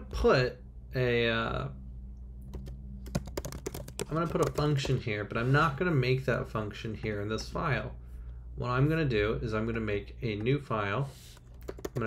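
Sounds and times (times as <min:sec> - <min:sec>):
computer keyboard typing: 0:02.5 - 0:05.0, 0:11.4 - 0:12.0.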